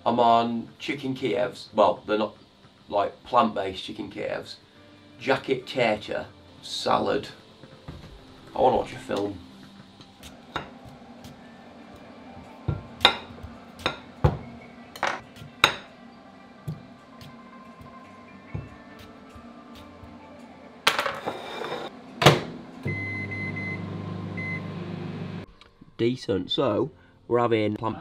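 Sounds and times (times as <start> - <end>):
microwave oven humming: 22.4 - 25.4.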